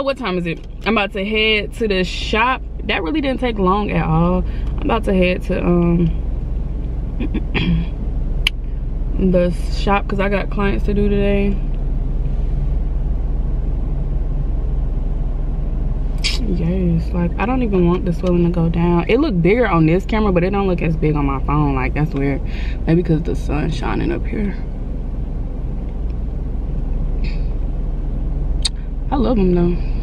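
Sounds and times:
car engine rumbling: 0:00.0 - 0:30.0.

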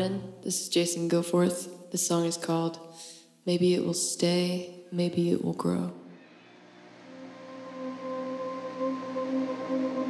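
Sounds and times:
lap steel guitar sustained notes: 0:06.8 - 0:10.0.

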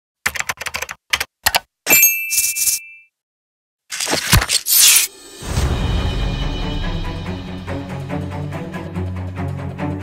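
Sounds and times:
typewriter keystroke clacks: 0:00.3 - 0:01.7
typewriter bell ding: 0:01.9 - 0:03.1.

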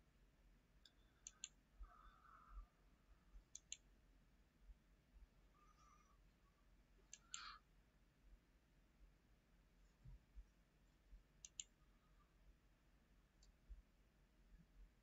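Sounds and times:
computer mouse clicks: 0:00.8 - 0:01.6, 0:03.5 - 0:03.9, 0:07.1 - 0:07.5, 0:11.4 - 0:11.8.

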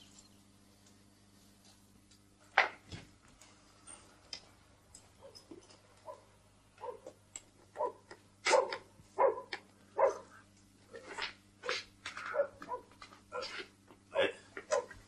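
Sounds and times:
dog barking: 0:06.0 - 0:07.1, 0:07.8 - 0:10.4, 0:11.6 - 0:12.9, 0:14.7 - 0:15.0.

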